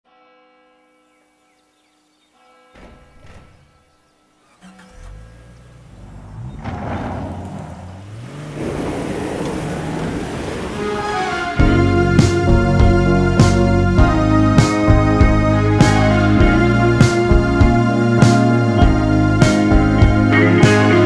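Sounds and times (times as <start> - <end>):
car engine accelerating: 4.4 - 21.0.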